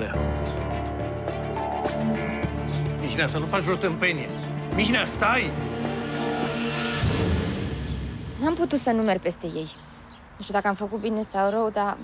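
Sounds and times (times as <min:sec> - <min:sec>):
tense background music: 0:00.0 - 0:08.8.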